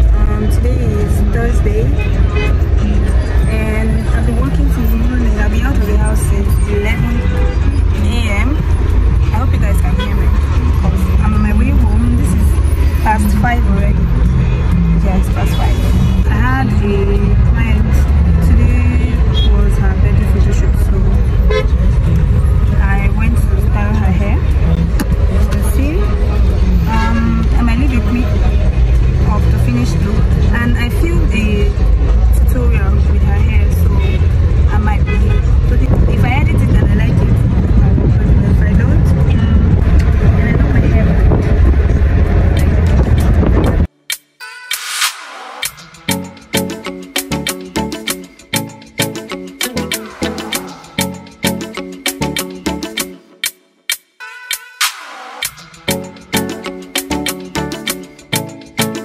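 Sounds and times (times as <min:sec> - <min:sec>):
car horns tooting: 0:01.7 - 0:04.1, 0:05.8 - 0:10.6, 0:21.2 - 0:22.6, 0:26.6 - 0:28.0, 0:33.7 - 0:35.8.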